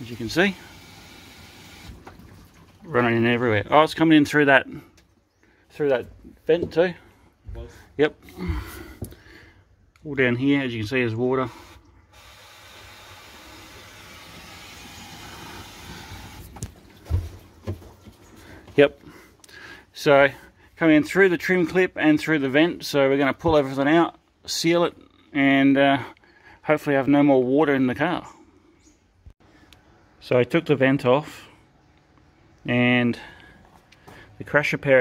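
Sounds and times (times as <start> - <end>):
water hose hissing on car body: 0.0 - 2.0, 11.5 - 16.6.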